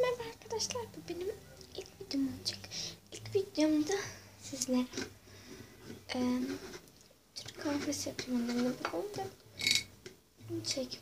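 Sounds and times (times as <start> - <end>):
girl speaking: 0.0 - 5.0, 6.1 - 6.6, 7.4 - 9.4, 10.4 - 11.0.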